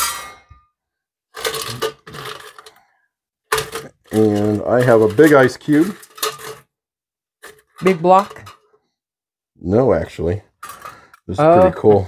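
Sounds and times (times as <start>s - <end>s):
ice cube scraping metal bucket: 1.3s - 2.8s, 3.5s - 6.7s, 7.4s - 8.7s, 10.6s - 11.2s.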